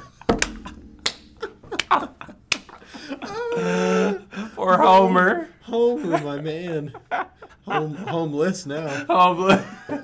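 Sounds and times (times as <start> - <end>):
hard laughter: 1.3 - 10.0.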